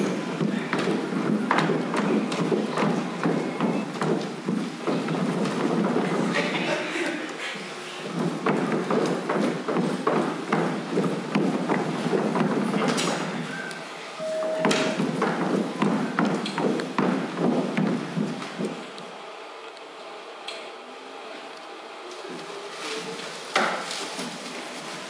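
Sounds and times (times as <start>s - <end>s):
feet stepping on stage floor: 0.0s - 7.4s, 8.0s - 13.5s, 14.6s - 19.1s
short steady beep: 13.5s - 15.0s.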